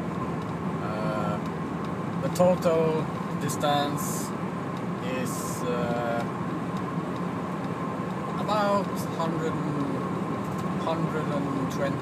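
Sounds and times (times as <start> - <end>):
diesel engine running: 0.0 - 12.0
tyre and road noise: 0.0 - 12.0.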